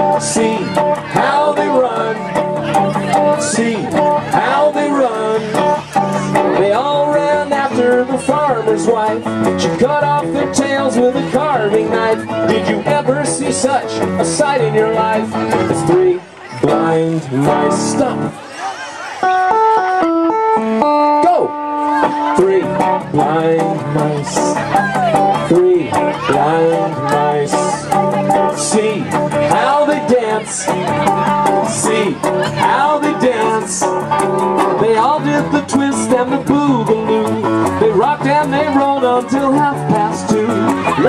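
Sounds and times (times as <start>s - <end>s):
person singing: 0.0s - 18.3s, 21.6s - 41.0s
acoustic guitar strumming: 0.0s - 41.0s
live band quick stepped notes: 0.0s - 41.0s.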